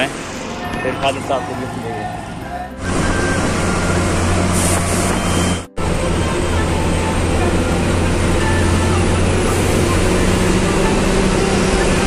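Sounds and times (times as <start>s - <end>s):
bus engine and road noise: 0.0s - 12.0s.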